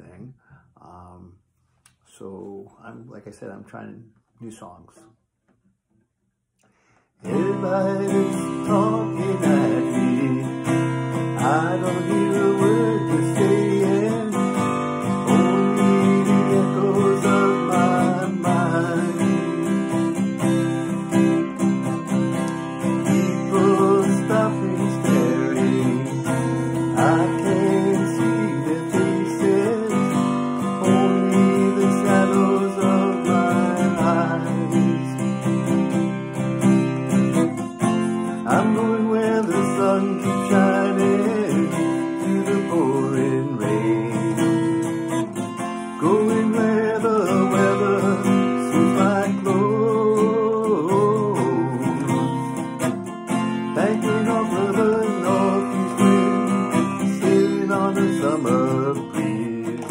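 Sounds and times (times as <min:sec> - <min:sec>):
acoustic guitar strumming: 0:06.8 - 0:59.9
man singing: 0:07.2 - 0:21.6, 0:22.4 - 0:35.8, 0:37.8 - 0:59.9.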